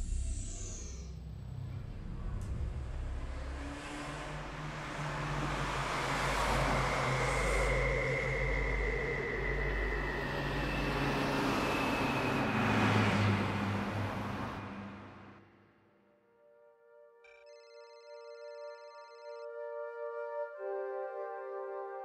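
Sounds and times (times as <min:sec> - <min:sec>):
cars passing: 0:01.3 - 0:15.8.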